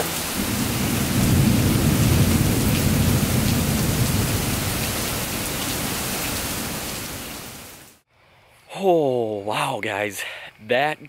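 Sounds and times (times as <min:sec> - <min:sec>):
heavy rain on lawn and concrete: 0:00.0 - 0:08.0
low rumble of thunder: 0:00.4 - 0:07.3.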